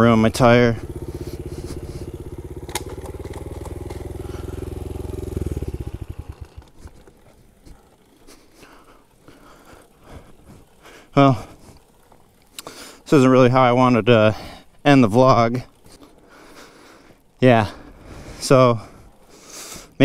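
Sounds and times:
motorbike engine running: 0:00.0 - 0:20.0.

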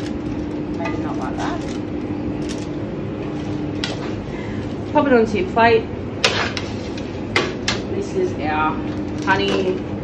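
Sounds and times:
kitchen ventilation hum: 0:00.0 - 0:10.0.

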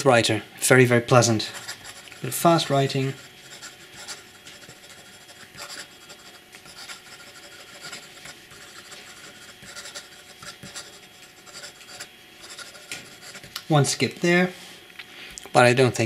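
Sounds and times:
fountain pen scratching on paper: 0:01.4 - 0:13.6.

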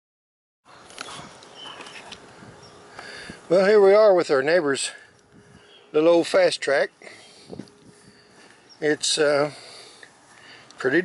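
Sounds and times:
low outdoor hiss: 0:00.7 - 0:11.0.

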